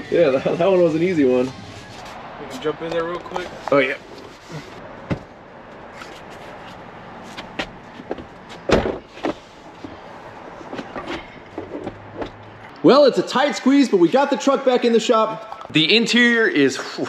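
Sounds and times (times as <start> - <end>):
person climbing into truck cab: 7.4 - 10.0, 10.6 - 12.4.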